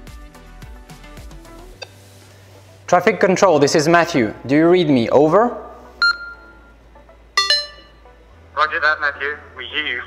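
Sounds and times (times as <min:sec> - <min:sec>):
two-note radio chirp: 0:06.0 - 0:06.8, 0:07.4 - 0:08.2.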